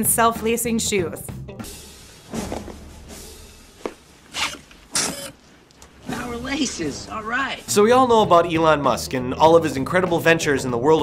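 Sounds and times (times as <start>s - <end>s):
mechanical laces tightening: 4.3s - 5.4s.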